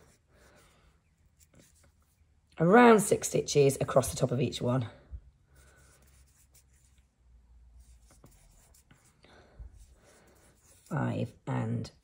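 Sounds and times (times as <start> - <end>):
yarn rustling on crochet hook: 0.0 - 3.1, 5.6 - 11.5.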